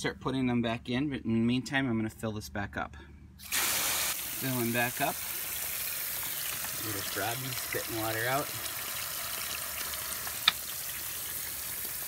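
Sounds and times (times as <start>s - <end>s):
fountain water splashing into pond: 3.4s - 12.0s.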